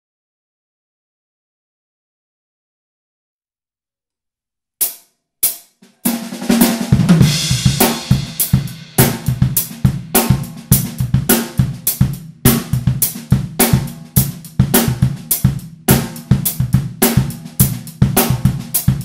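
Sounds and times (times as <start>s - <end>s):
drum kit funk groove: 4.8s - 19.0s.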